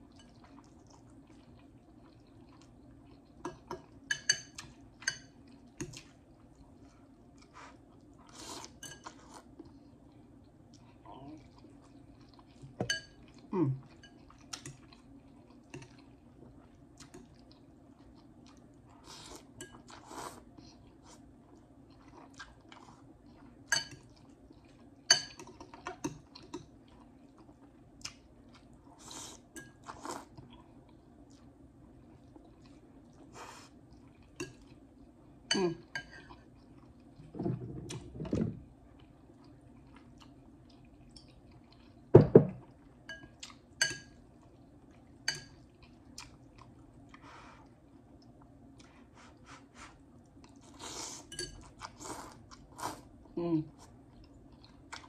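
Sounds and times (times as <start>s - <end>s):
quiet chewing: 0.0s - 37.3s, 37.9s - 55.0s.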